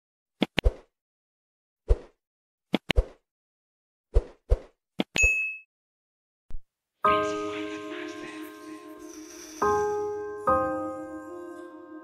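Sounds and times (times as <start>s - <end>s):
small bell ring: 5.2s - 5.7s.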